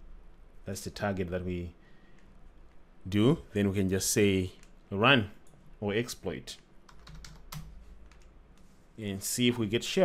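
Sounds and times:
low steady hum: 0:00.0 - 0:10.0
quiet keyboard keystrokes: 0:06.8 - 0:08.7.

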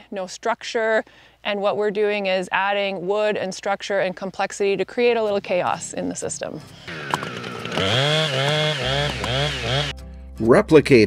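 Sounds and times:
chainsaw engine revving: 0:06.9 - 0:09.9.

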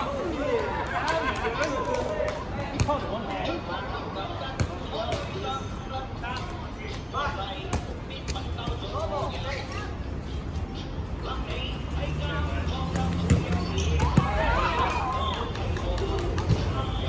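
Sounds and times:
balls smacking hard court: 0:12.9 - 0:14.4.

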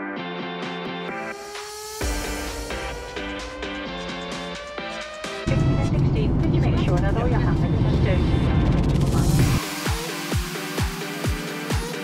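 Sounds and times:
jet engine cabin roar: 0:02.0 - 0:09.6.

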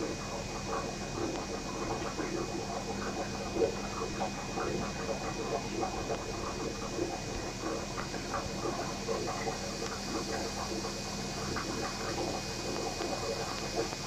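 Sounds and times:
aquarium bubbling: 0:00.0 - 0:14.0
low electrical hum: 0:00.0 - 0:14.0.

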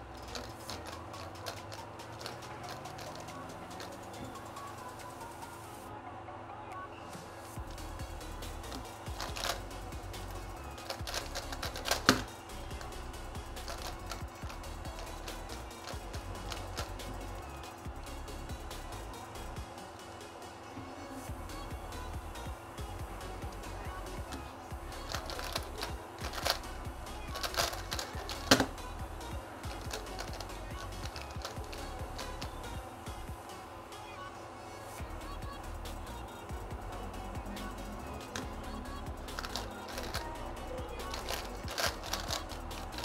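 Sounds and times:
background music: 0:00.0 - 0:43.0
puzzle cube plastic clicks: 0:00.2 - 0:04.5, 0:08.6 - 0:09.8, 0:10.5 - 0:13.0, 0:13.6 - 0:17.4, 0:25.0 - 0:28.8, 0:29.6 - 0:32.7, 0:39.2 - 0:43.0.

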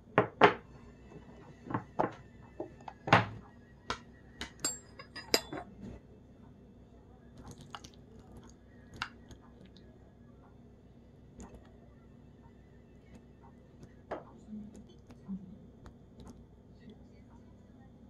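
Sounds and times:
utensils clinking against dishes: 0:04.4 - 0:05.7.

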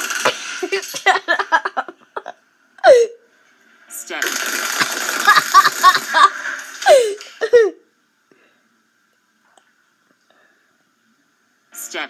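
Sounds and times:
person giggling: 0:00.8 - 0:03.0, 0:05.2 - 0:07.7.

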